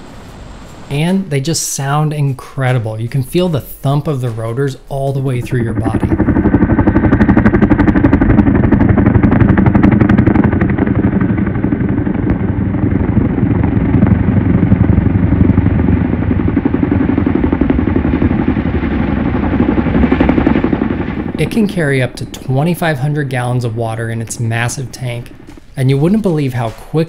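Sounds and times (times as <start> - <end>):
helicopter rotors thumping: 0.0 - 27.0
helicopter turbines: 0.0 - 27.0.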